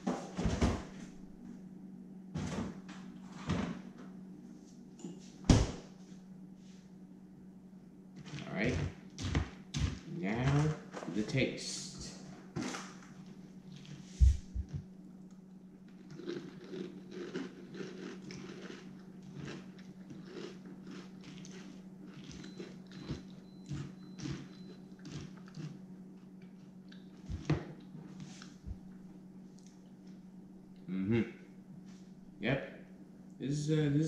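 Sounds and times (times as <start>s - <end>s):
person chewing crunchy cereal: 8.2s - 10.2s, 12.6s - 14.8s, 15.8s - 28.6s.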